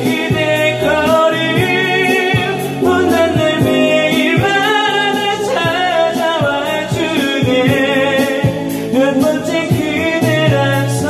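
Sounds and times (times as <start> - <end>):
drums beating: 0.0 - 10.7
backing track: 0.0 - 11.0
man singing pop ballad karaoke: 0.0 - 11.0.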